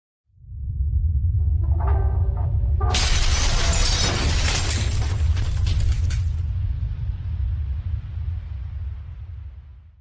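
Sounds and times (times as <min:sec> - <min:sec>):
deep steady rumble: 0:00.4 - 0:10.0
crash of shattering debris: 0:02.9 - 0:06.5.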